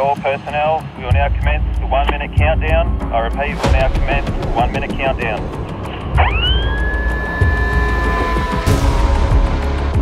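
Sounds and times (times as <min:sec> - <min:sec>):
warning siren: 0:06.1 - 0:09.5.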